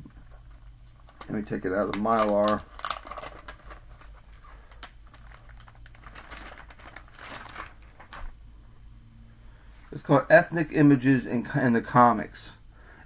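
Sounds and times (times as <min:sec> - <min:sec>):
plastic film crinkling: 0:00.0 - 0:08.4.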